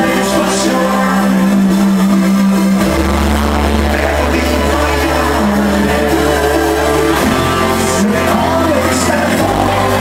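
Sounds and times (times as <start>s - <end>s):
deep bass: 0.0s - 10.0s
loud electronic music through pa: 0.0s - 10.0s.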